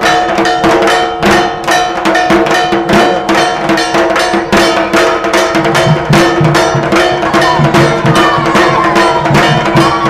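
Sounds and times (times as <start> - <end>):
drum strokes: 0.0 - 10.0
ringing of struck metal: 0.0 - 10.0.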